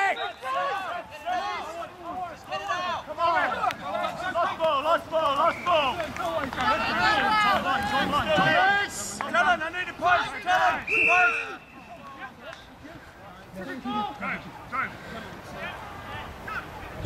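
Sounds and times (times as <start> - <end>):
men shouting: 0.0 - 12.4.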